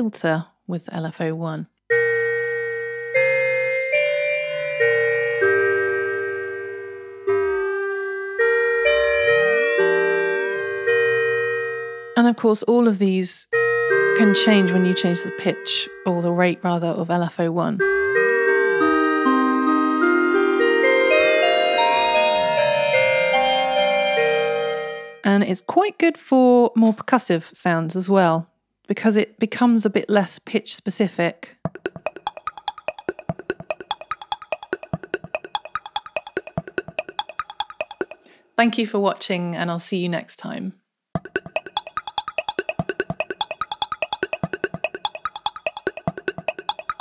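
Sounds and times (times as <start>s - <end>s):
bell-like synthesizer notes: 1.9s - 12.2s, 13.6s - 17.1s, 17.8s - 25.2s, 31.7s - 38.3s, 41.2s - 47.0s.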